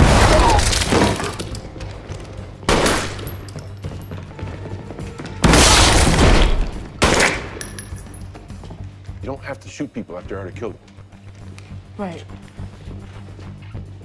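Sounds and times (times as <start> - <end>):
film music score: 0.0 - 14.0.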